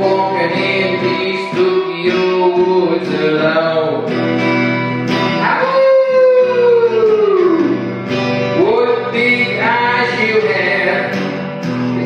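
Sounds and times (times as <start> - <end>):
guitar accompaniment: 0.0 - 12.0
voice howling like a wolf: 5.6 - 7.8.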